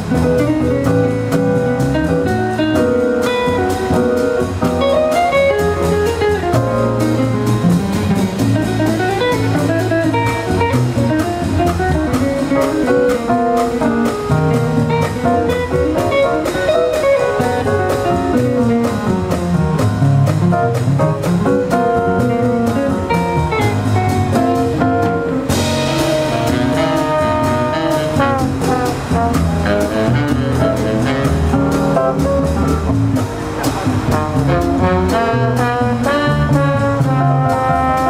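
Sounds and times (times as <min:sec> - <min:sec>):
drum kit: 0:00.0 - 0:38.0
jazz guitar lead: 0:00.0 - 0:38.0
upright bass: 0:00.0 - 0:38.0.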